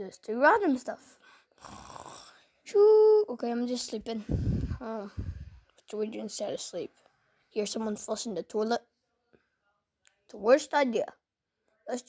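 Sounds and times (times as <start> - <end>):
child breathing: 4.1 - 5.7.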